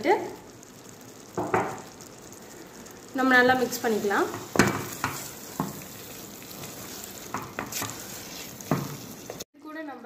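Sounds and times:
food sizzling in a pot: 0.0 - 10.0
wooden spatula stirring: 3.5 - 9.5
spatula scraping a pot: 4.4 - 9.4.

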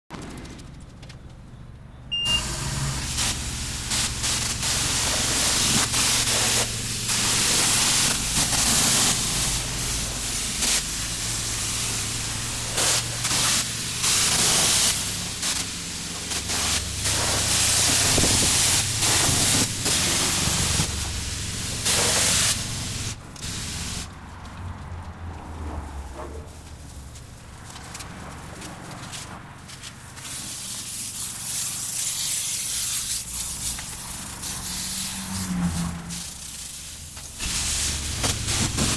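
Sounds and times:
pressure washer spraying car: 2.1 - 24.2, 28.6 - 38.9.

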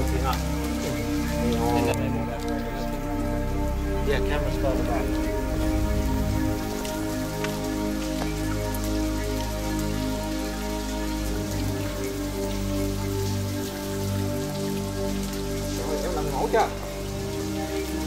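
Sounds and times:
ambient music with held tones: 0.0 - 18.0
patter of drips: 0.0 - 18.0.

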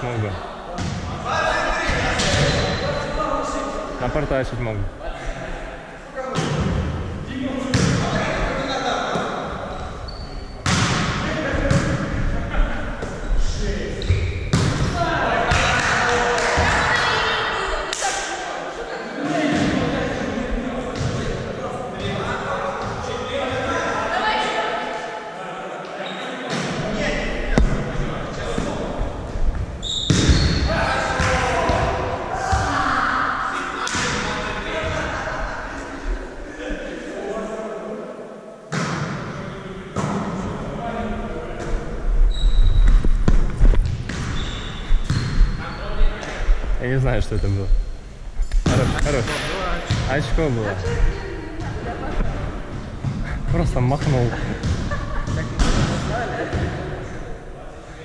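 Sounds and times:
ball hitting gym floor: 28.5 - 30.6, 42.8 - 44.4, 54.0 - 56.9.

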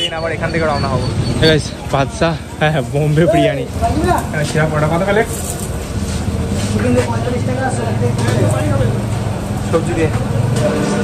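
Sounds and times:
people talking: 0.0 - 5.6, 6.6 - 11.0
vehicle engine humming: 0.0 - 11.0.

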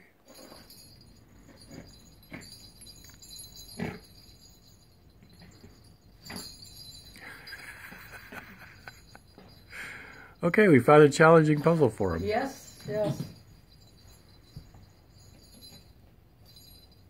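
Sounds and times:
faint jingling: 0.0 - 17.0.

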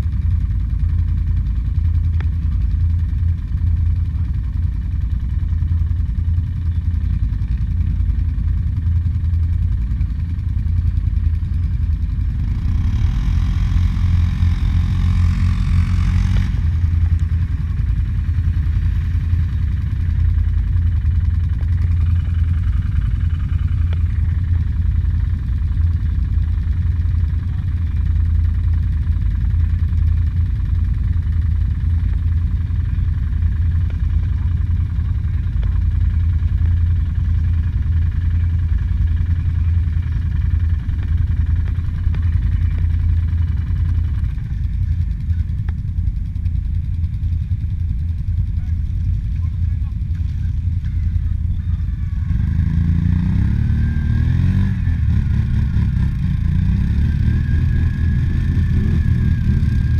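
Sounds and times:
atv engine idling: 0.0 - 59.9
higher louder engine sound: 0.0 - 59.9.

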